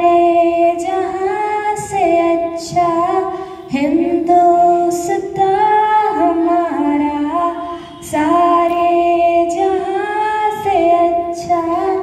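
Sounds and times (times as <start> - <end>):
girl singing into a microphone: 0.0 - 12.0.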